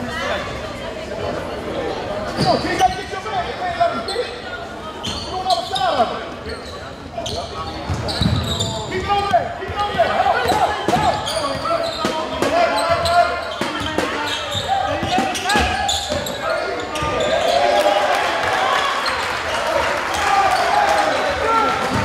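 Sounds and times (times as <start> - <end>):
sneakers squeaking: 2.2 - 17.7.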